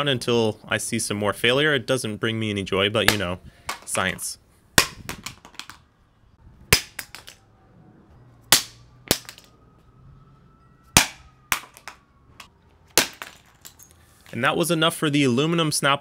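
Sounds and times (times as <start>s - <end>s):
work lights crashing onto concrete: 6.7s - 7.4s, 8.5s - 9.5s, 11.0s - 12.0s, 12.9s - 14.4s.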